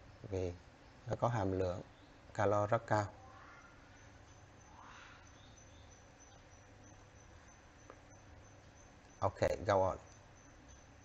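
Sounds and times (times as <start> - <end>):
thin high-pitched whine: 0.0 - 11.0.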